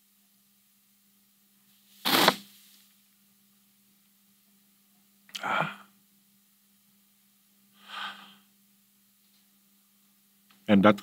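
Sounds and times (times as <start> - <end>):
faint steady hum: 0.0 - 11.0
man sniffing: 2.1 - 2.4.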